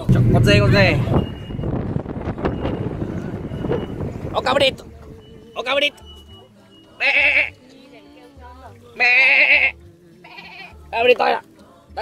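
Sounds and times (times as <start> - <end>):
goat bleating: 6.8 - 7.6, 8.9 - 11.0.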